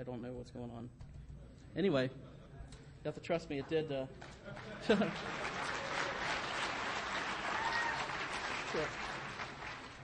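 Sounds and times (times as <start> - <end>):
audience applause: 4.2 - 10.0.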